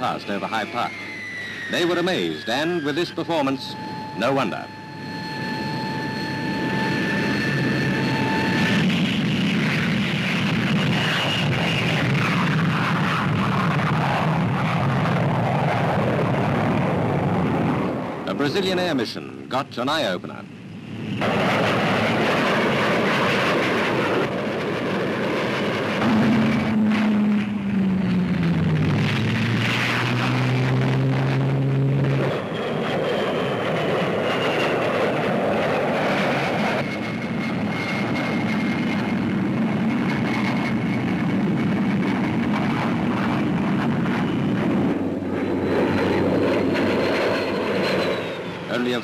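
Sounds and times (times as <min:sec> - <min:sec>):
faint high whine: 0:00.0 - 0:13.9
jet engine rushing: 0:00.0 - 0:49.0
drone dropping in pitch: 0:25.8 - 0:32.7.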